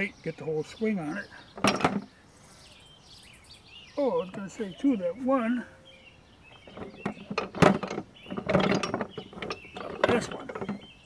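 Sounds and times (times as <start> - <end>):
hammers clattering in plastic bucket: 1.6 - 2.1, 6.6 - 11.0.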